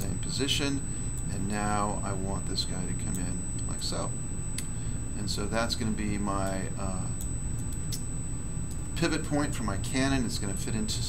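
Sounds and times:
low hum of room noise: 0.0s - 11.0s.

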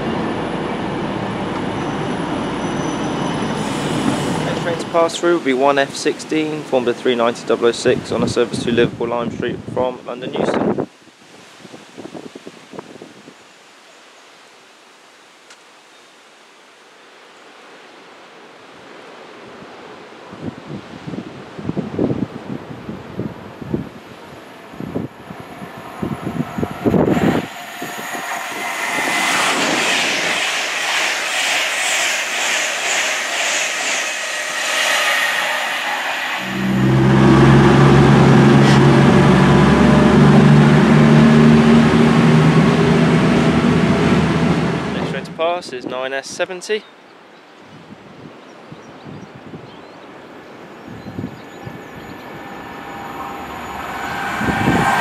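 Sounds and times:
train drone: 0.0s - 8.4s, 22.3s - 45.4s, 50.1s - 55.0s
electric train passing at speed: 0.0s - 9.0s, 21.3s - 45.4s, 50.1s - 55.0s
wind buffeting microphone: 20.3s - 45.4s, 47.7s - 55.0s.

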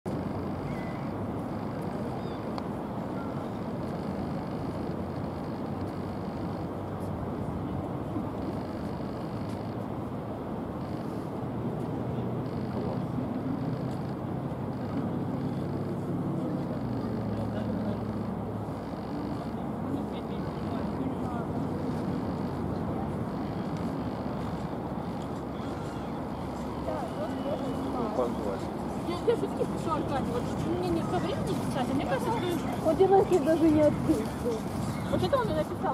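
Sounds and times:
engine hum: 0.1s - 35.9s
low rumble of engines: 0.1s - 35.9s.

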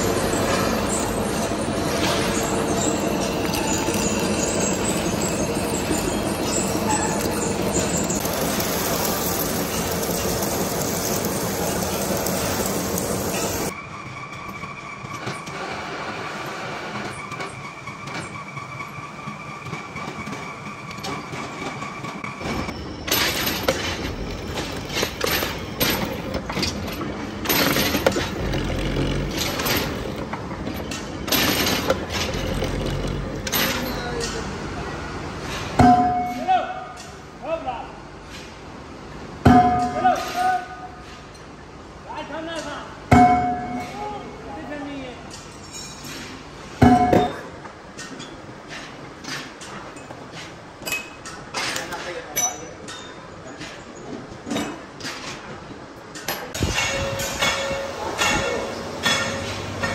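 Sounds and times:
machine whine: 0.0s - 34.0s.

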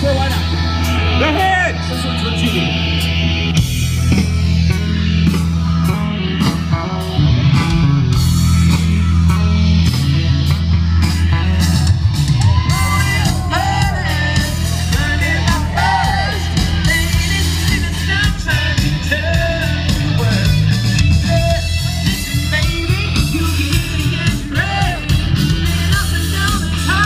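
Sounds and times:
electric guitar solo: 0.0s - 18.1s
live rock band: 0.0s - 27.0s.

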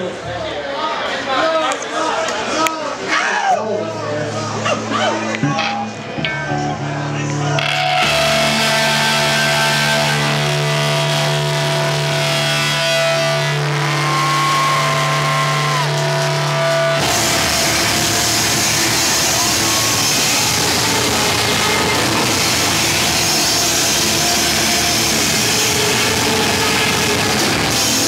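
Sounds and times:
distorted electric guitars: 4.5s - 28.0s
screamo band playing live: 4.5s - 28.0s
low bass note: 5.3s - 27.6s.

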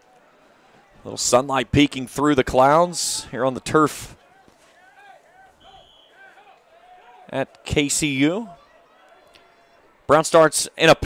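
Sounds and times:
distant shouted voices: 0.0s - 11.0s.

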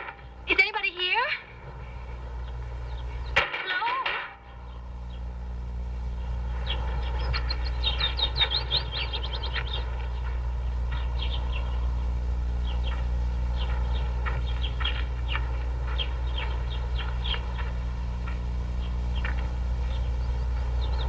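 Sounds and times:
steady low hum: 0.0s - 21.0s
small birds chirping: 0.5s - 3.4s, 4.5s - 21.0s.

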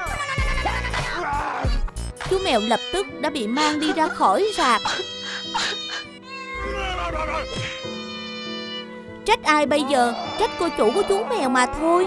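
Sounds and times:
background music: 0.0s - 12.0s
cat meowing: 2.4s - 8.9s.

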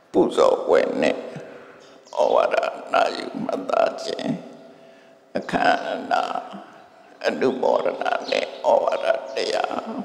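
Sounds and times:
man's low vocal sound: 9.6s - 10.0s.

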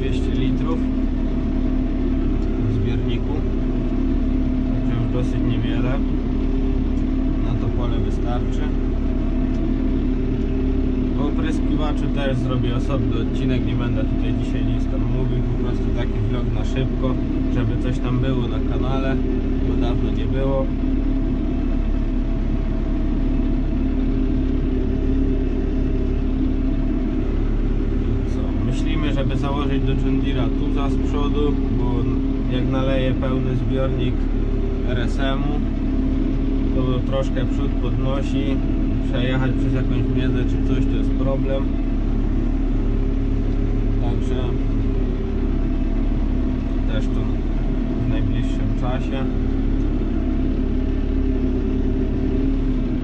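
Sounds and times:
tractor diesel engine idling: 0.0s - 53.0s.

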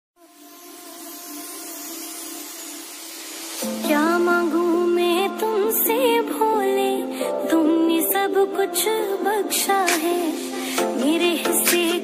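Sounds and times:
faint hiss: 0.2s - 6.6s, 9.8s - 12.0s.

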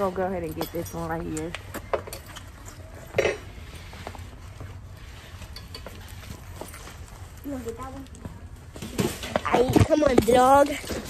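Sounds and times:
small clinks and rustles: 0.0s - 8.2s.

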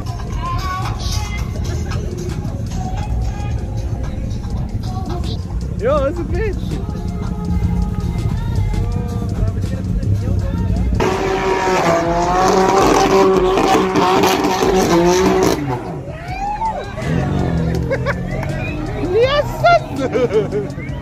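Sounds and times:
car engine revving: 0.0s - 21.0s
car tyres squealing: 11.0s - 21.0s.

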